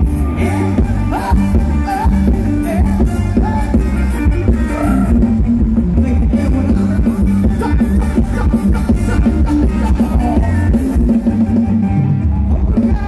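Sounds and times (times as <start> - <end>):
live band dance music: 0.0 - 13.0
steady drum beat: 0.0 - 13.0.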